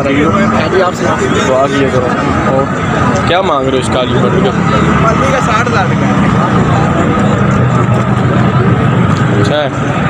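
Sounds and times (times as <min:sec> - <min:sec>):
busy outdoor crowd: 0:00.0 - 0:10.0.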